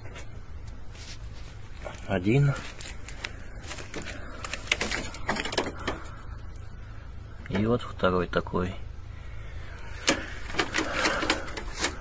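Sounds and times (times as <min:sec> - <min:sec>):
rustling netting and branches: 0:00.0 - 0:06.6, 0:09.7 - 0:12.0.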